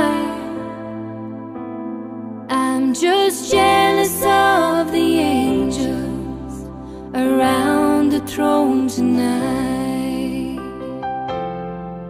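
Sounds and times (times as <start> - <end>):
slow ballad piano: 0.0 - 12.0.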